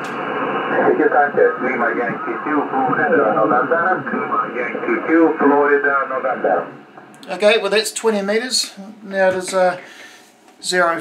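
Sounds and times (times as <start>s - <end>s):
radio band hiss: 0.0s - 11.0s.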